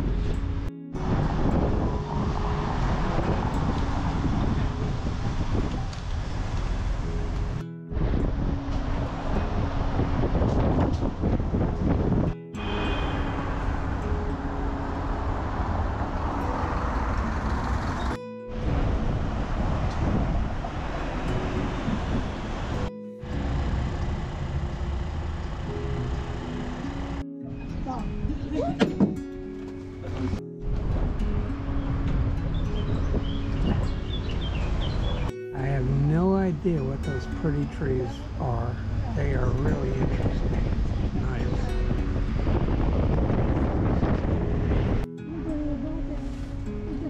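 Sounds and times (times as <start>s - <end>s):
music playing: 0.0s - 5.6s, 7.0s - 24.9s, 25.6s - 47.0s
bus rumble: 0.0s - 47.0s
traffic: 0.0s - 47.0s
wind: 0.0s - 47.0s.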